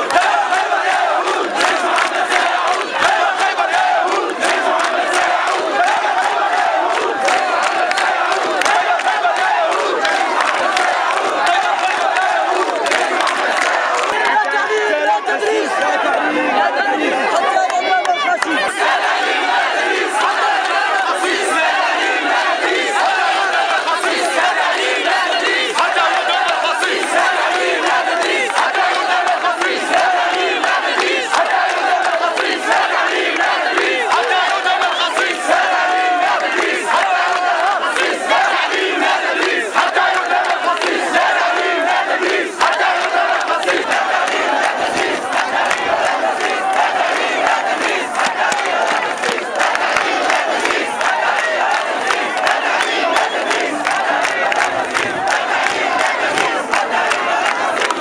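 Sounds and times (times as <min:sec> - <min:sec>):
crowd of men shouting: 0:00.0 - 0:58.0.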